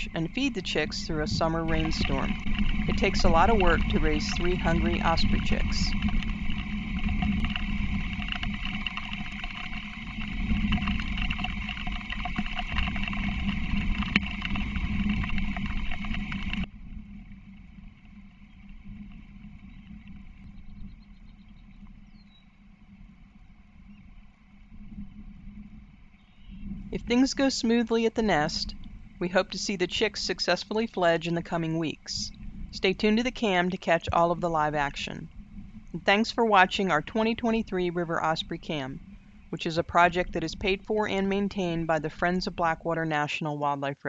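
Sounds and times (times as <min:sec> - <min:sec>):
rain and wind noise: 0:00.0 - 0:20.6, 0:21.8 - 0:42.9
quiet outdoor background: 0:00.0 - 0:44.0.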